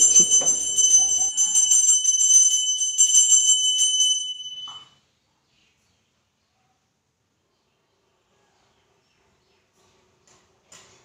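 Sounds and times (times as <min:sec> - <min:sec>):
hand bell ringing rapidly: 0:00.0 - 0:04.8.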